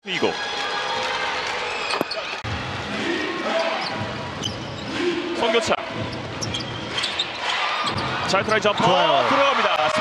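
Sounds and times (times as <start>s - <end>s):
large hall noise: 0.0s - 10.0s.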